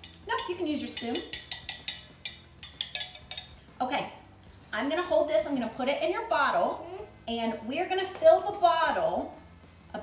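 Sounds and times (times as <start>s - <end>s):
spoons clinking against glass: 0.0s - 3.8s.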